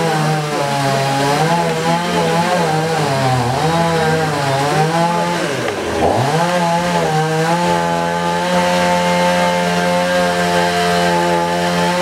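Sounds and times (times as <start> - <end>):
small engine at high revs: 0.0 - 12.0.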